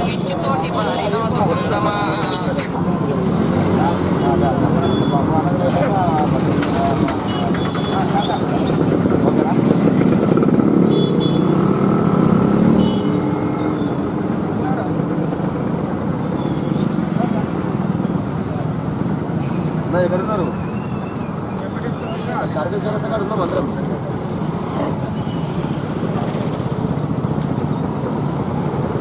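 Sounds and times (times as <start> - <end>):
people talking: 0.0 - 9.8, 21.6 - 25.1
street traffic: 0.0 - 29.0.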